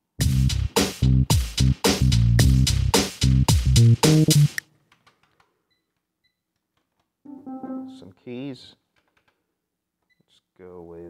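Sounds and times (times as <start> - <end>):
synthesizer notes: 7.3 - 8.1.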